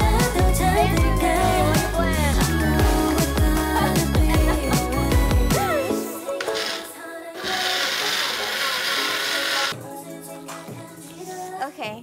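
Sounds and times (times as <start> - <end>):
background music: 0.0 - 12.0
pepper mill grinding: 7.4 - 9.7.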